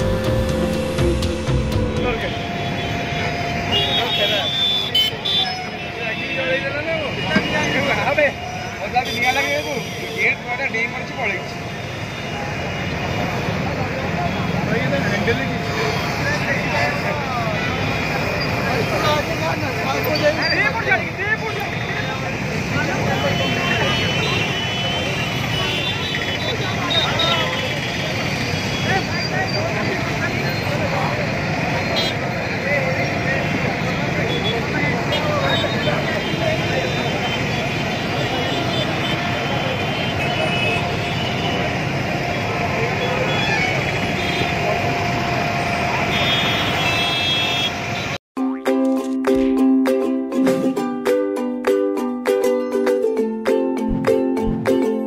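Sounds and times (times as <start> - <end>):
plucked ukulele music: 0.0 - 2.2, 48.4 - 55.0
high tone: 0.0 - 4.2, 52.6 - 55.0
low rumble of street noise: 0.0 - 48.2
road traffic hum: 0.0 - 48.2, 48.9 - 55.0
murmur of crowd voices: 0.0 - 49.6.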